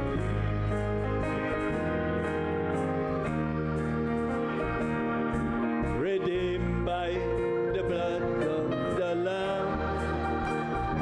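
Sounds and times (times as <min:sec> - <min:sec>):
instrumental accompaniment: 0:00.0 - 0:11.0
voices singing a hymn: 0:03.0 - 0:11.0.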